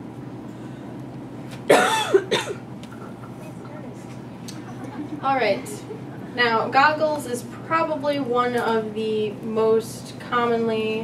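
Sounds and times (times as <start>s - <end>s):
person coughing: 1.7s - 2.6s.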